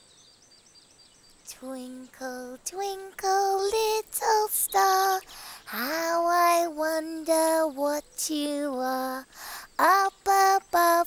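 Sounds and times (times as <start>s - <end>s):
child singing wordless tune: 1.5s - 11.0s.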